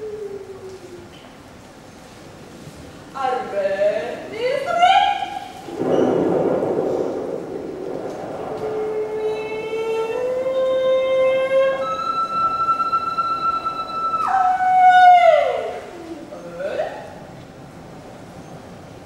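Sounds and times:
woman singing: 0:08.9 - 0:13.5.

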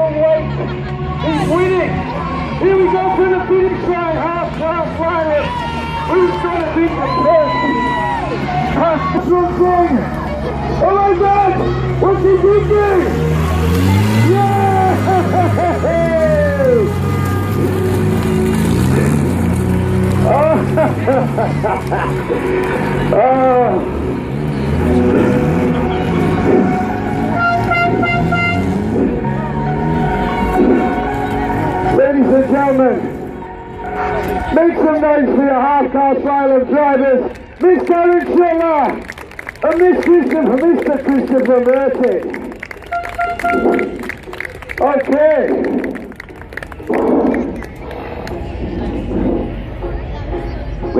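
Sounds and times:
music: 0:25.3 - 0:35.6, 0:47.0 - 0:50.9
vehicle horn beeps: 0:27.3 - 0:28.9, 0:42.8 - 0:44.1
steady low rumble: 0:45.6 - 0:50.9.

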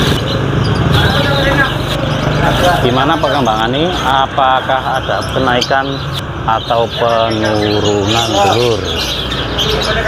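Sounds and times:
motorcycle engine passing by: 0:00.0 - 0:04.7
background voices: 0:00.4 - 0:10.0.

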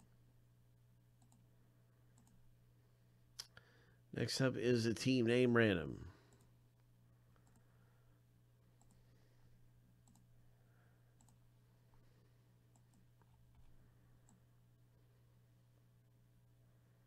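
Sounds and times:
low steady hum: 0:00.0 - 0:17.0
computer mouse clicks: 0:01.2 - 0:01.5, 0:02.1 - 0:02.4, 0:07.4 - 0:07.7, 0:08.8 - 0:09.1, 0:10.0 - 0:10.3, 0:11.2 - 0:11.4, 0:12.7 - 0:14.5.

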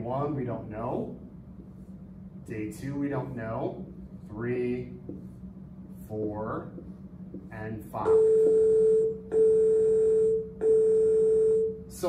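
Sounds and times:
long electronic beeps: 0:08.0 - 0:11.8.

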